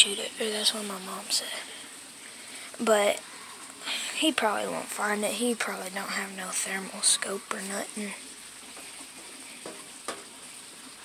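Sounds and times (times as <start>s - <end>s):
faint outdoor night hiss: 0.0s - 11.0s.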